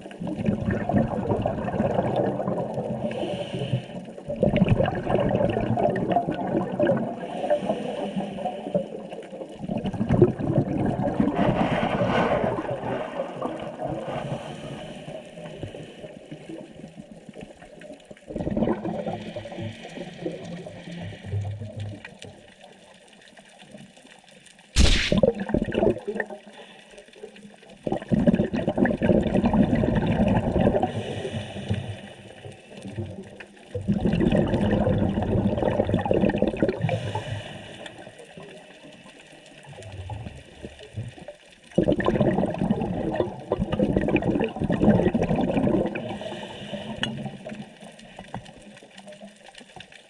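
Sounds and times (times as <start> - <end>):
underwater bubbles gurgling: 0.0 - 50.0
faint underwater hiss: 3.0 - 4.2, 7.1 - 9.4, 11.5 - 16.8, 19.0 - 21.7, 24.8 - 25.3, 30.7 - 32.9, 36.8 - 39.7, 45.9 - 48.3
light crackles: 19.2 - 25.4, 37.0 - 41.8, 46.2 - 50.0.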